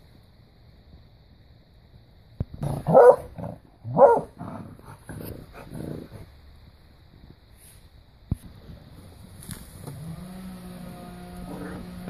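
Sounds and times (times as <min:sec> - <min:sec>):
dog barking: 0:02.8 - 0:04.3.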